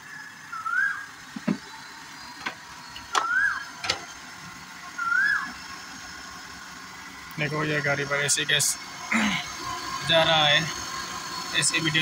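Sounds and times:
car engine hum: 0.0 - 12.0
bird whistled call: 0.5 - 1.1, 3.1 - 3.7, 5.0 - 5.5.

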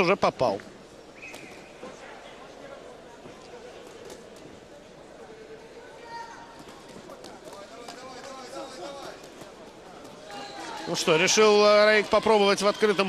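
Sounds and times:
crowd murmur: 0.7 - 13.0
shouted voices: 10.3 - 13.0.

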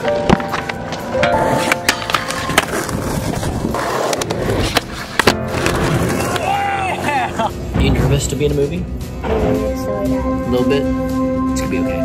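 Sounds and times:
skateboard clacking down: 0.0 - 6.6
skateboard sliding on metal rail: 0.0 - 7.1
skateboard wheels rolling on concrete: 0.0 - 7.6.

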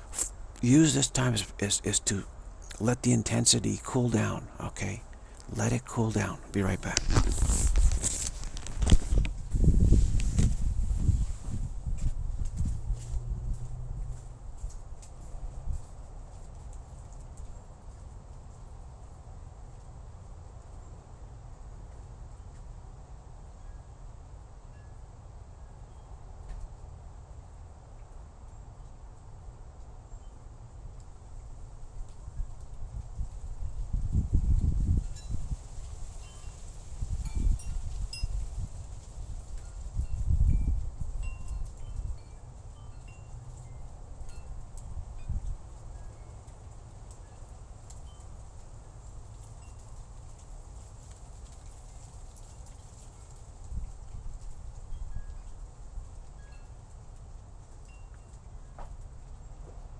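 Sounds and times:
wind buffeting microphone: 6.8 - 15.9, 31.8 - 42.4, 43.7 - 45.8.

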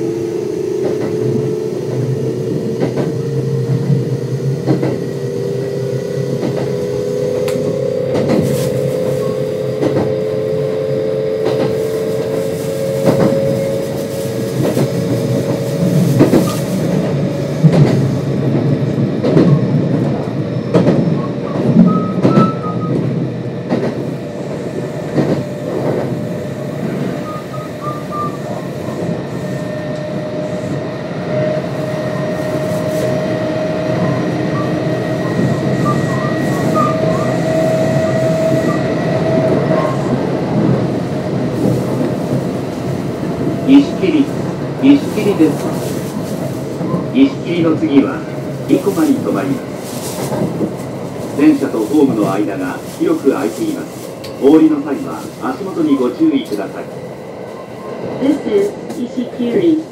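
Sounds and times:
train rumble: 0.0 - 59.9.

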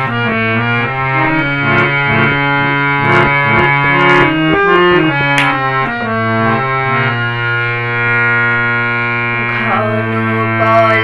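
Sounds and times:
harmonium chord: 0.0 - 11.0.

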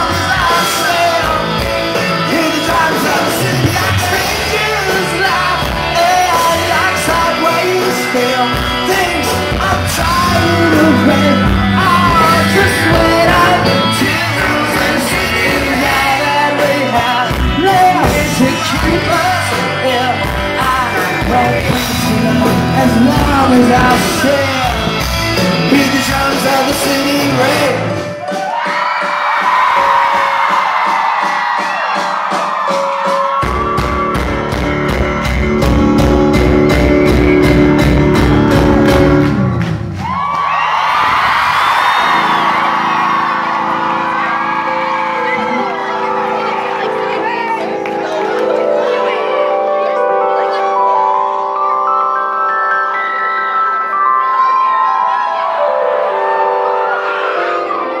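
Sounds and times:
guitar: 0.0 - 58.0
live rock band: 0.0 - 58.0.

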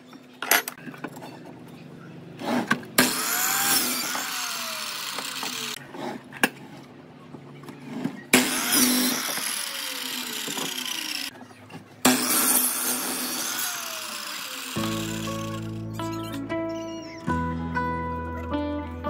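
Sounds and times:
miter saw cutting wood: 3.0 - 5.8, 8.3 - 11.3, 12.0 - 16.2
saw motor whine coasting down: 3.0 - 5.8, 8.4 - 11.3, 12.1 - 16.0.

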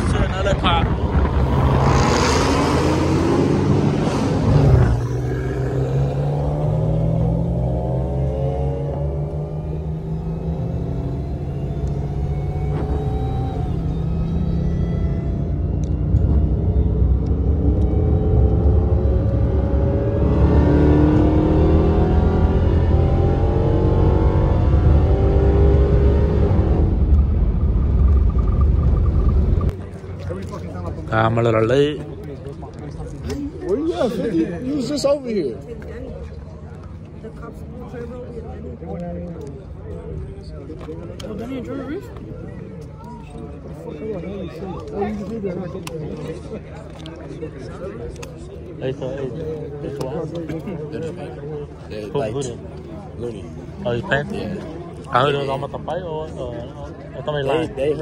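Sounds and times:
rush of noise: 0.0 - 30.2
car engine running at low revs: 3.6 - 29.8.

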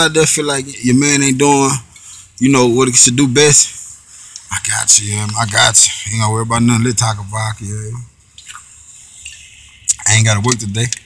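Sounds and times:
man sipping and swallowing: 4.3 - 4.5.

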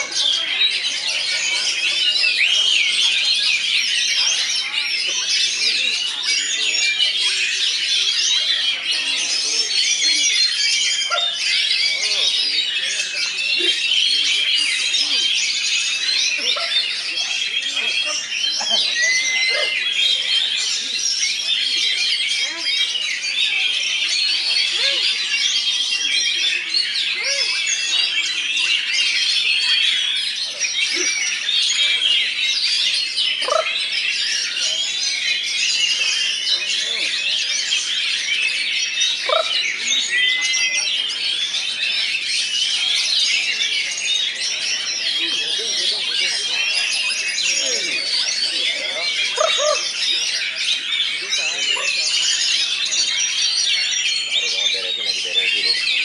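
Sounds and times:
many songbirds singing: 0.0 - 56.0.

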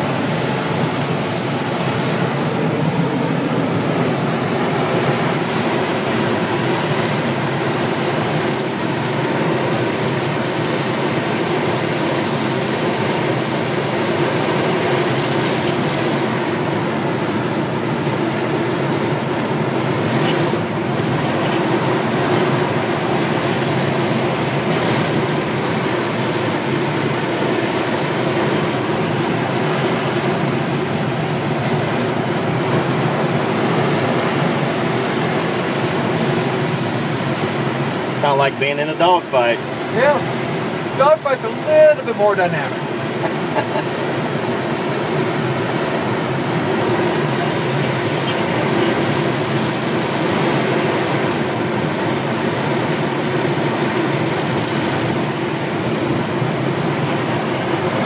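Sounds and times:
air rushing over glider: 0.0 - 38.4, 39.1 - 58.0.

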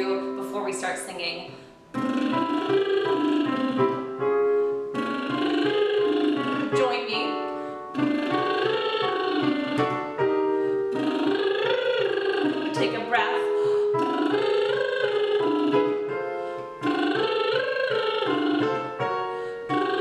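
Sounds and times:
piano chords: 0.0 - 20.0
woman doing lip trills: 1.9 - 20.0.

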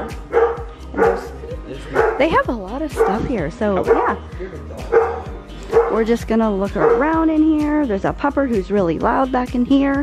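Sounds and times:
dog barking: 0.0 - 4.2, 4.9 - 6.1, 6.7 - 7.2.

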